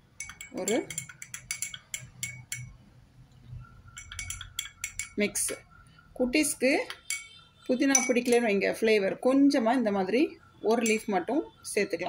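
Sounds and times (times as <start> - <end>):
spoon clinking against glass: 0.1 - 2.8, 3.9 - 5.6, 6.9 - 8.6, 10.8 - 11.2.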